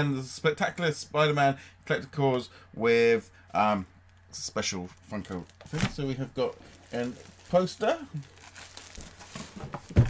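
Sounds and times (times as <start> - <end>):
plastic bag crinkling: 3.7 - 10.0.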